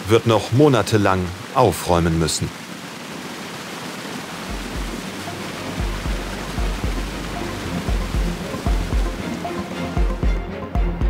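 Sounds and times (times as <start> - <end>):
water rushing from pipe: 0.0 - 11.0
music with low beat: 4.5 - 11.0.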